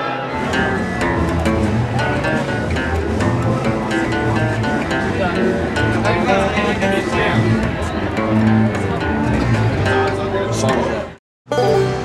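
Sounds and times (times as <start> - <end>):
acoustic guitar: 0.0 - 12.0
person's voice: 11.5 - 12.0.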